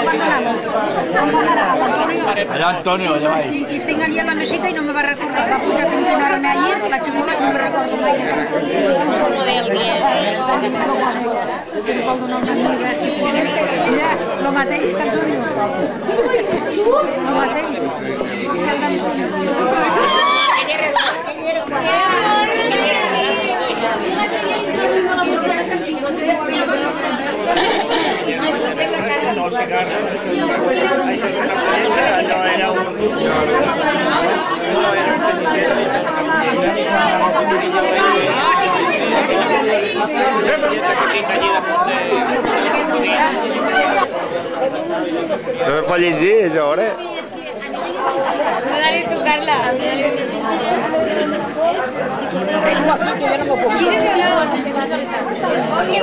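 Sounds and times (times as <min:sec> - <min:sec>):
chatter of overlapping voices: 0:00.0 - 0:56.0.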